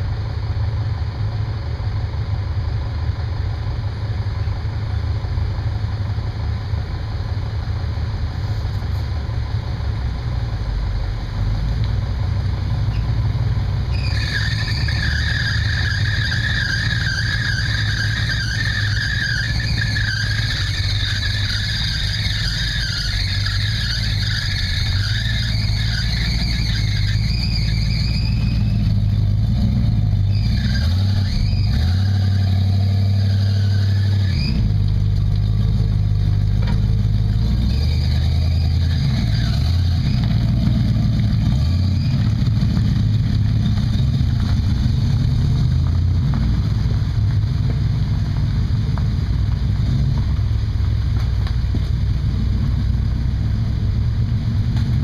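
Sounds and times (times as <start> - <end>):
truck engines revving: 0.0 - 55.0
high wavering squeals: 13.9 - 34.7, 37.3 - 42.4.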